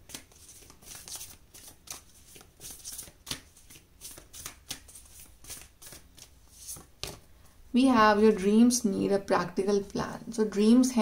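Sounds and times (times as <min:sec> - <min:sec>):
cards being shuffled: 0:00.0 - 0:07.3.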